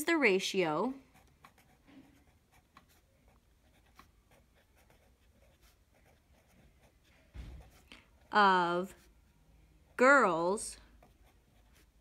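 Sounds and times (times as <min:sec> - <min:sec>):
pen scratching on paper: 0:01.0 - 0:09.2, 0:10.8 - 0:12.0.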